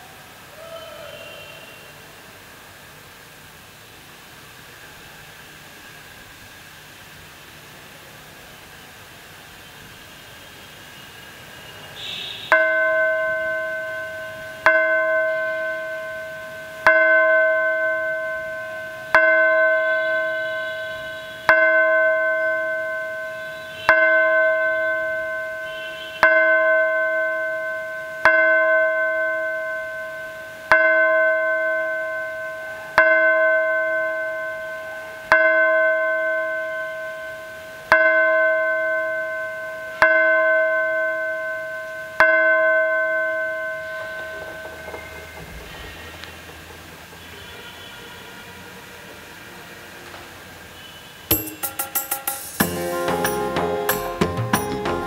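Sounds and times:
bell ringing: 0:51.3 - 0:55.0.

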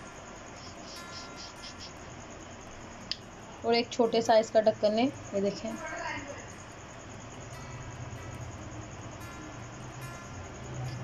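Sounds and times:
insects chirping: 0:00.0 - 0:11.0
steady low hiss: 0:00.0 - 0:11.0.

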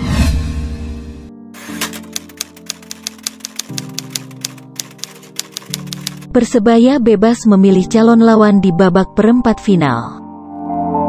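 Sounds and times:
background music with held chords: 0:00.6 - 0:11.0
typewriter key clicks: 0:01.6 - 0:06.3.

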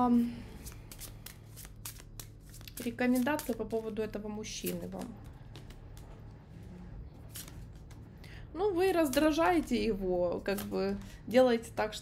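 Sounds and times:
steady low hum: 0:00.0 - 0:12.0
cards being shuffled: 0:00.5 - 0:06.4, 0:07.0 - 0:08.2, 0:08.9 - 0:09.7, 0:10.4 - 0:11.2.

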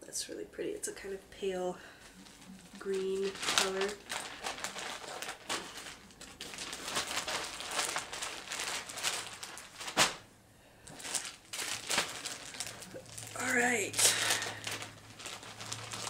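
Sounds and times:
bags crinkling and rustling: 0:02.1 - 0:16.0.

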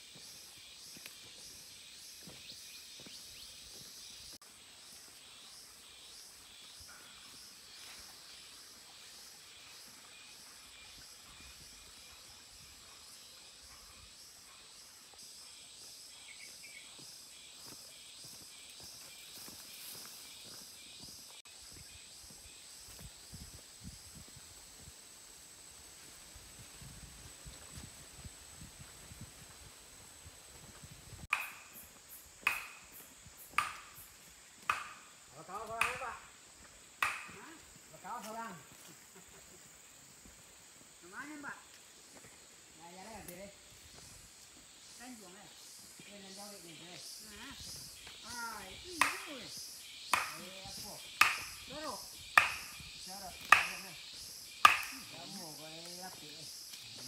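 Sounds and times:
insects chirping: 0:00.0 - 0:57.0
footsteps on dirt path: 0:00.1 - 0:04.3, 0:16.5 - 0:21.4.

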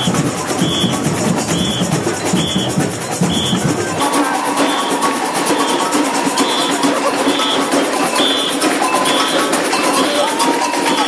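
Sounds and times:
samba drum groove: 0:00.0 - 0:11.0
short high percussion note: 0:00.0 - 0:11.0.

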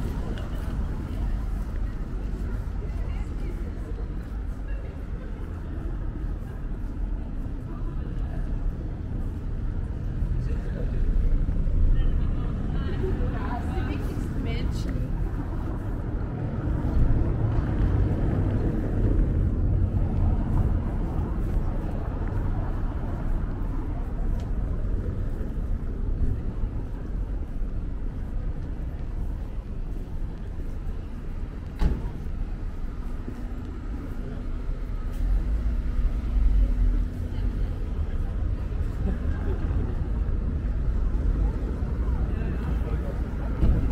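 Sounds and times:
low traffic rumble: 0:00.0 - 0:43.9.

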